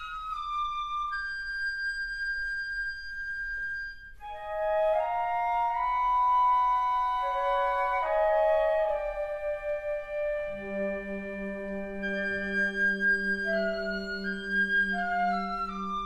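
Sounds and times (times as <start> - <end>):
flute ensemble playing chords: 0.0 - 16.0.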